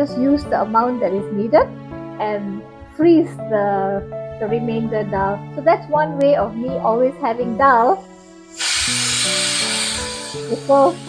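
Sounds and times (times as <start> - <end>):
pressure cooker whistling: 8.2 - 11.0.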